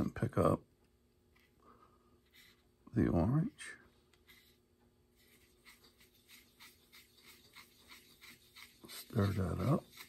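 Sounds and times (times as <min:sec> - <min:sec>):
paintbrush scratching in paint: 0:02.2 - 0:10.0.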